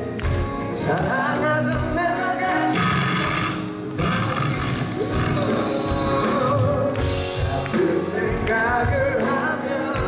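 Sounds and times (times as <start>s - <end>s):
live rock band: 0.0s - 10.0s
lead singer singing: 0.6s - 10.0s.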